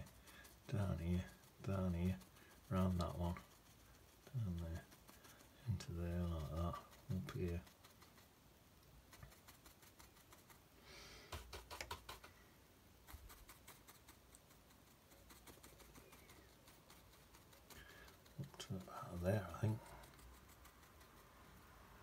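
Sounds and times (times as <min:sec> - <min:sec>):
brush tapping paint onto paper: 0:00.0 - 0:12.4, 0:13.0 - 0:21.4.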